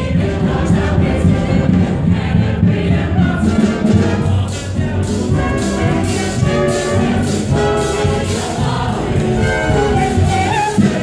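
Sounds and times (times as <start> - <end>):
ensemble singing: 0.0 - 11.0
pit band playing: 0.0 - 11.0.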